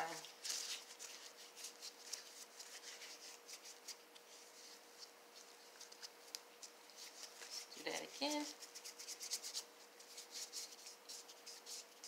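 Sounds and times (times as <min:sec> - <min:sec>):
faint steady hum: 0:00.0 - 0:12.0
gloved hands rubbing: 0:00.0 - 0:12.0.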